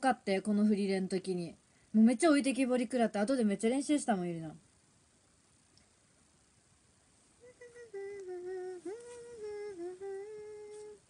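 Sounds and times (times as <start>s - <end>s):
woman humming a tune: 7.4s - 11.0s.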